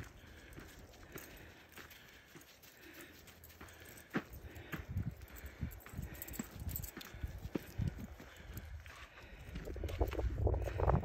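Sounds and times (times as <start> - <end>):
footsteps on gravel: 0.0 - 11.0.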